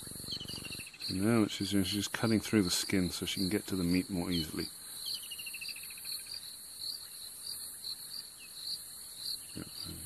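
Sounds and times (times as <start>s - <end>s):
cricket chirping: 0.0s - 10.0s
falling insect trill: 0.0s - 10.0s
insects shrilling: 0.0s - 10.0s.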